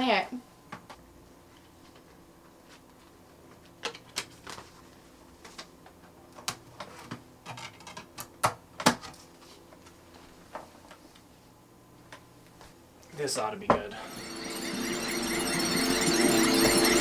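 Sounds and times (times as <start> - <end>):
plastic cases clicking and clacking: 6.4 - 9.2.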